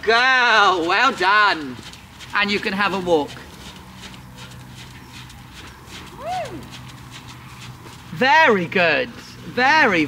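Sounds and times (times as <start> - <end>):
horse hooves walking softly: 0.0 - 10.0.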